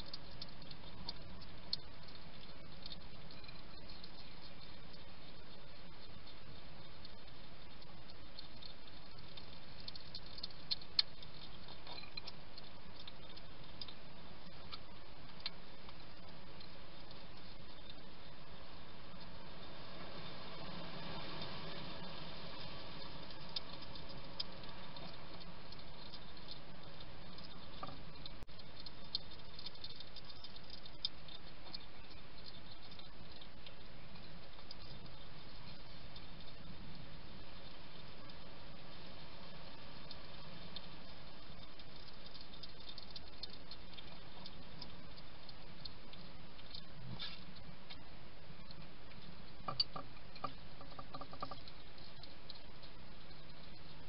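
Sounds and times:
background hiss: 0:00.0 - 0:54.0.

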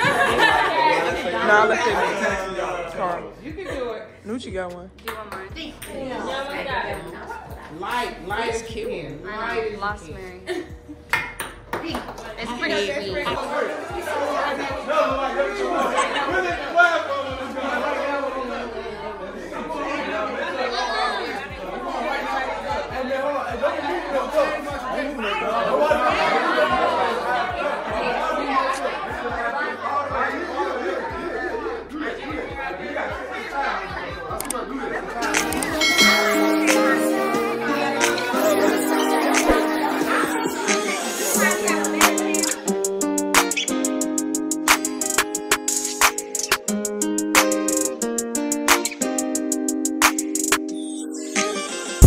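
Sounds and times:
voices chattering: 0:00.0 - 0:11.1, 0:12.3 - 0:49.6.

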